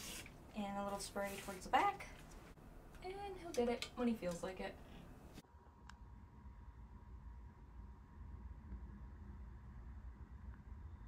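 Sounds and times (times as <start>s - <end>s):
low steady hum: 0.3s - 11.0s.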